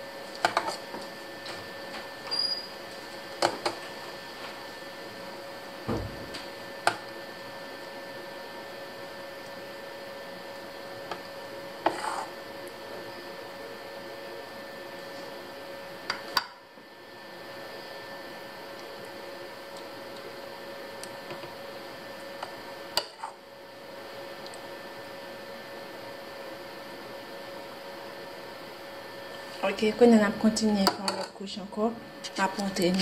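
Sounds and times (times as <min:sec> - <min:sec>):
steady hum: 0:00.0 - 0:33.0.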